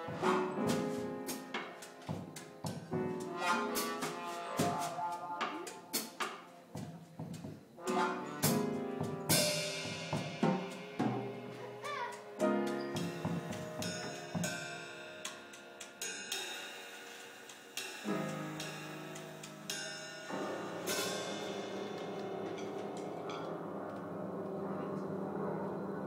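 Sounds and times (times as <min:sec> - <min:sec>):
piano chords: 0:00.0 - 0:06.8, 0:07.7 - 0:26.0
free jazz trio playing: 0:00.0 - 0:16.4, 0:18.0 - 0:23.8
cymbal crash: 0:07.8 - 0:25.6.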